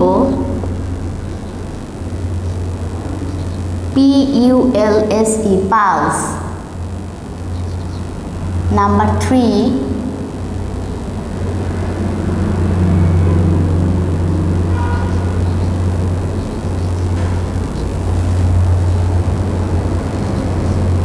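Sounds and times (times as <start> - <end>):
machinery low rumble: 0.0 - 21.0.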